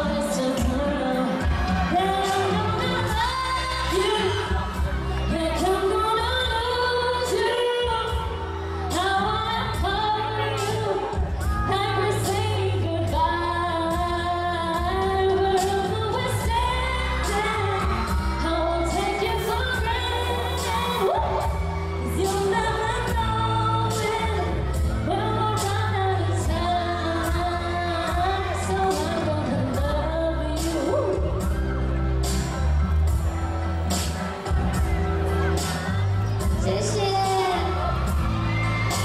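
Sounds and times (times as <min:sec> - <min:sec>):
woman singing pop song: 0:00.0 - 0:32.5, 0:33.9 - 0:39.0
backing music with steady beat: 0:00.0 - 0:39.0.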